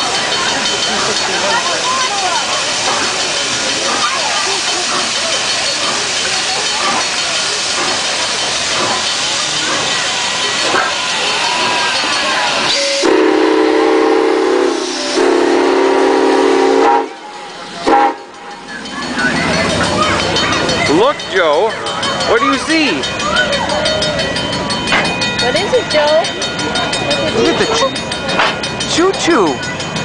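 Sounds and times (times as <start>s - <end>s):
steam locomotive hissing: 0.0s - 30.0s
deep steam whistle blasts: 10.3s - 18.3s.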